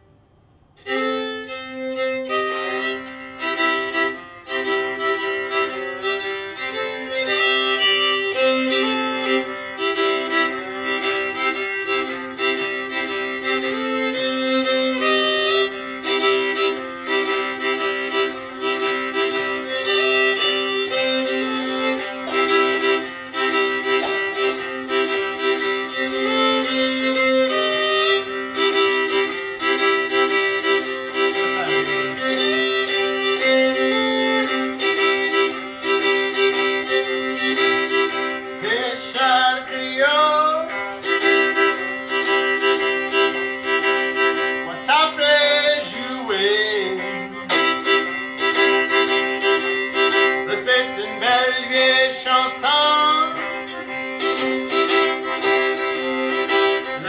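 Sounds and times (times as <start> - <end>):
two fiddles playing: 0.8 - 57.0.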